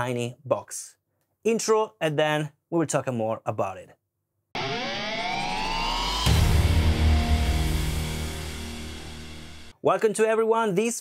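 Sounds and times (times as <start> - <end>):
rising riser sound effect: 4.6 - 9.7
intro music: 4.6 - 9.8.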